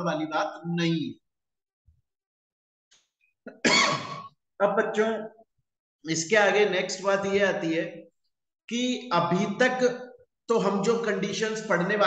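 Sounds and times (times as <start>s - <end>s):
man coughing: 3.5s - 4.4s.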